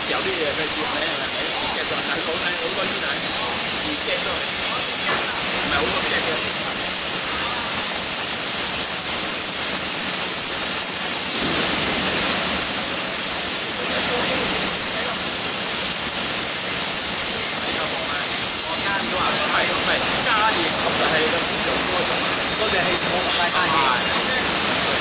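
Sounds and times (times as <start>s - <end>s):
loud foundry hiss: 0.0s - 25.0s
workers' voices: 0.0s - 25.0s.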